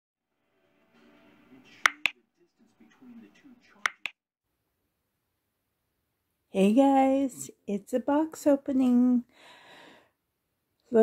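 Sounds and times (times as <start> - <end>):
sharp snaps: 1.9 - 2.1, 3.9 - 4.1.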